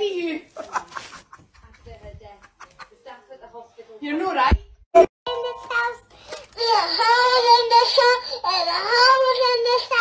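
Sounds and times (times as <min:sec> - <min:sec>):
girl singing into toy microphone: 0:05.3 - 0:10.0.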